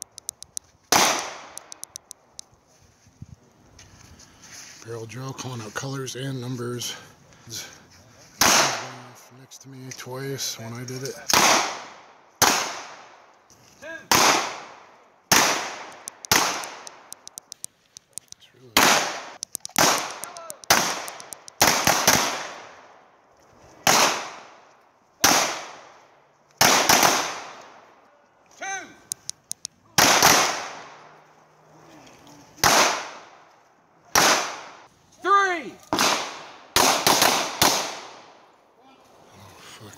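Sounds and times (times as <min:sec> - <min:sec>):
handgun shots with echo: 0:30.0 - 0:31.0, 0:32.6 - 0:33.3, 0:35.9 - 0:38.2.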